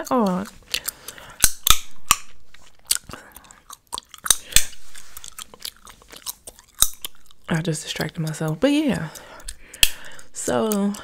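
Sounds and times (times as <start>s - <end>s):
gum chewing mouth smacks: 0.0s - 11.0s
sharp mouth clicks: 0.0s - 11.0s.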